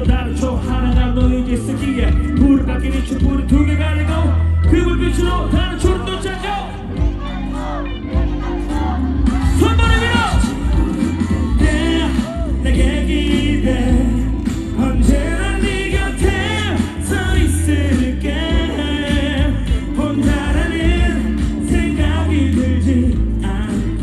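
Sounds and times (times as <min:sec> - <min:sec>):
man singing into microphone: 0:00.0 - 0:06.9, 0:11.5 - 0:24.0
backing track with heavy bass: 0:00.0 - 0:24.0.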